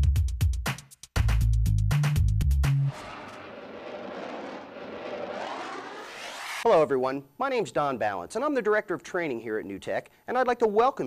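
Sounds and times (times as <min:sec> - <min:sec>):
whooshing rush: 0:02.9 - 0:06.7.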